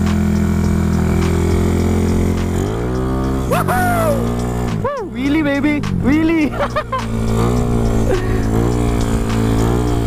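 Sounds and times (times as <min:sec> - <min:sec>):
scooter engine humming: 0:00.0 - 0:10.0.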